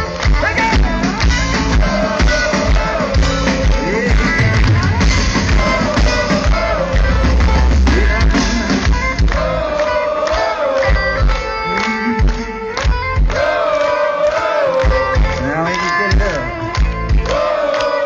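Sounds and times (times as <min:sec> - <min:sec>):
electric guitar with bent notes: 0:00.0 - 0:18.0
live heavy metal band: 0:00.0 - 0:18.0.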